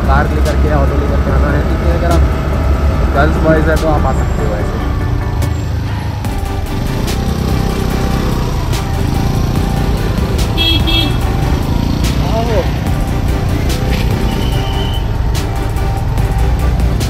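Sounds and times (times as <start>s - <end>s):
scooter engine rumble: 0.0s - 17.0s
high horn beeps: 10.4s - 11.8s, 14.0s - 15.3s.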